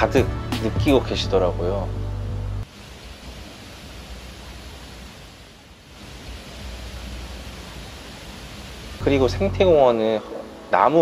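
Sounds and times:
wind rustling leafy trees: 2.6s - 11.0s.

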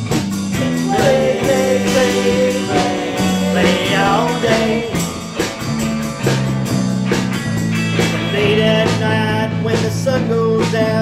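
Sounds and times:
rock and roll band playing: 0.0s - 11.0s
sliding electric guitar lead: 0.6s - 10.5s.

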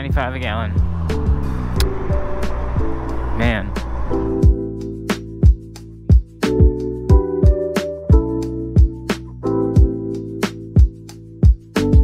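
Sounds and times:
road noise: 0.0s - 4.7s
lo-fi music with steady beat: 0.0s - 12.0s.

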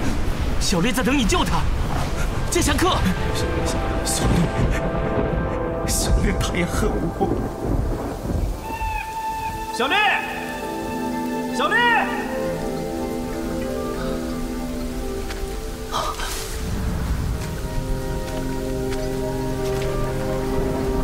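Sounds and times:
rain falling: 0.0s - 21.0s
low roll of thunder: 3.1s - 9.6s.

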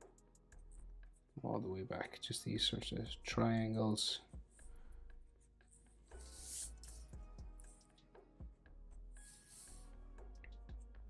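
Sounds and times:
marker scratching on paper: 5.7s - 7.1s, 9.2s - 9.9s.

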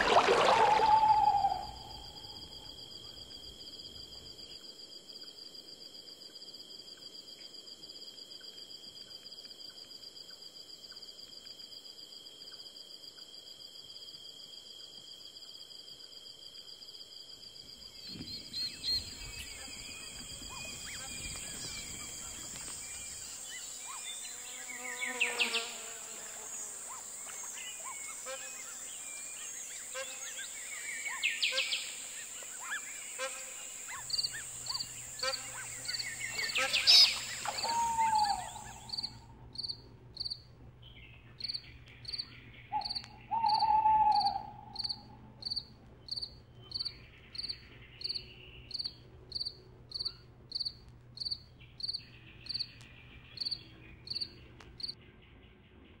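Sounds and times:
bird calls: 0.0s - 2.5s, 18.0s - 26.0s, 26.9s - 48.9s
high insect buzz: 17.8s - 40.5s, 41.4s - 52.8s.

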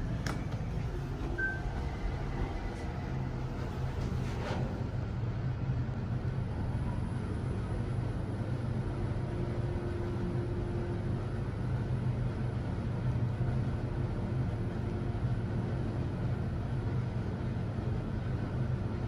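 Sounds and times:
faint higher tone: 1.3s - 2.2s.

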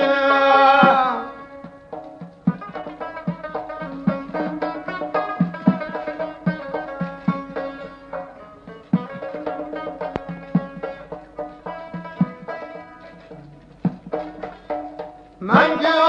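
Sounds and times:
hand drum strokes: 0.0s - 16.0s
plucked string instrument melody: 0.0s - 16.0s.

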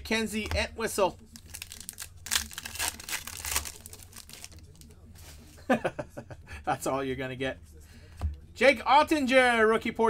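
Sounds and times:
handling cards: 0.0s - 5.6s
foil wrapper tearing and crinkling: 1.3s - 5.0s
man laughing: 5.6s - 6.6s.

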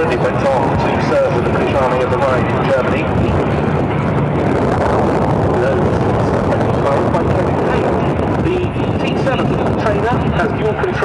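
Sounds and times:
light aircraft engine droning: 0.0s - 11.0s
wind buffeting microphone: 0.0s - 11.0s.

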